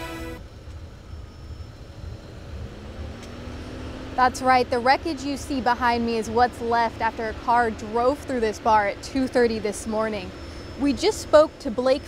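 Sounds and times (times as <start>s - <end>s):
faint steady hum: 0.0s - 12.0s
road traffic rumble: 0.0s - 12.0s.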